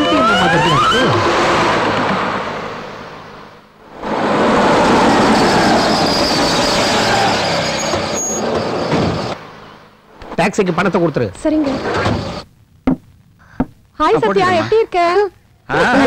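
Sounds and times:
van engine and road noise: 0.0s - 12.5s.

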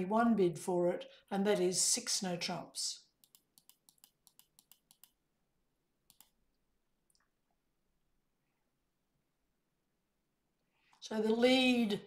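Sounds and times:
computer mouse clicks: 3.2s - 5.2s, 6.0s - 6.4s.

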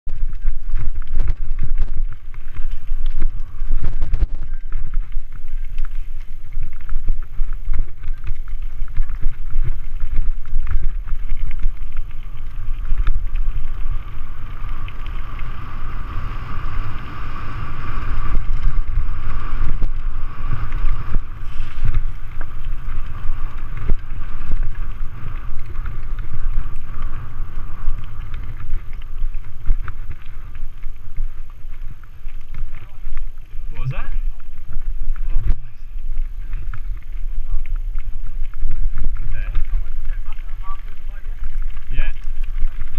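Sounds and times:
wind rumbling on microphone: 0.0s - 42.9s
tyres crunching over gravel: 0.1s - 42.9s
steady hiss: 0.2s - 42.9s.

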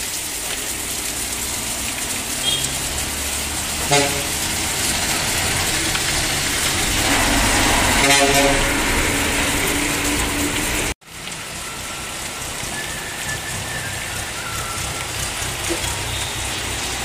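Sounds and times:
heavy rain on a flooded street: 0.0s - 17.0s
vehicle engine hum: 0.4s - 17.0s
low rumble: 6.4s - 11.0s.

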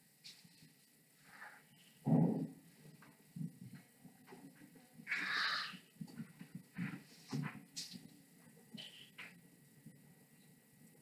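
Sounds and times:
marker pen on whiteboard: 2.8s - 9.4s.

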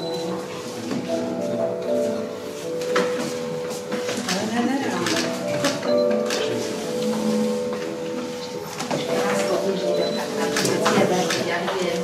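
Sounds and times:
background music held note: 5.5s - 10.2s.

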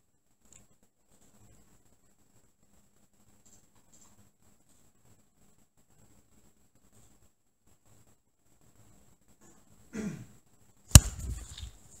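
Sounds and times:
sharp knock: 10.9s - 11.7s.

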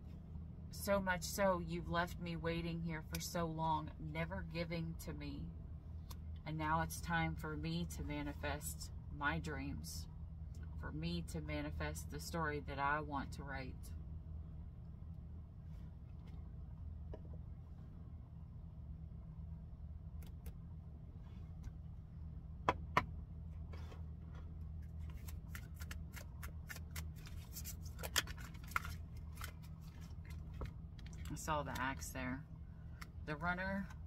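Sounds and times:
low steady hum: 0.0s - 34.0s
cards shuffling and riffling: 23.7s - 31.4s.

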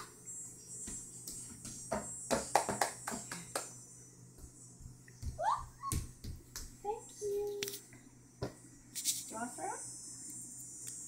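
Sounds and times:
hand taps and claps: 0.9s - 3.7s, 5.2s - 6.8s.

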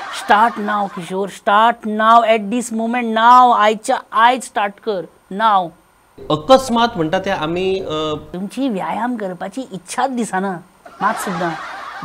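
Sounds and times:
man speaking: 5.3s - 10.5s.

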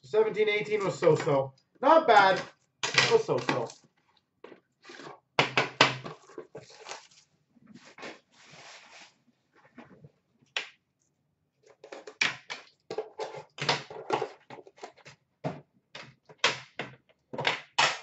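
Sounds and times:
soft rustle: 6.5s - 10.0s.

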